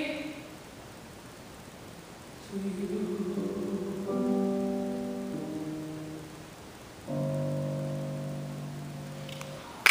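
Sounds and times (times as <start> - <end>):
grand piano chords: 2.5 - 9.9.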